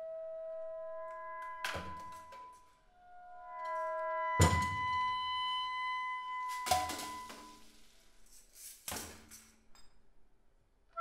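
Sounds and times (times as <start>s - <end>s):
sustained high tones: 0.0s - 7.7s.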